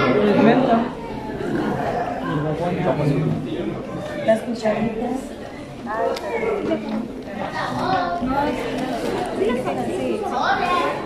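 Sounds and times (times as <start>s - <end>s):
overlapping chatter of voices: 0.0s - 11.0s.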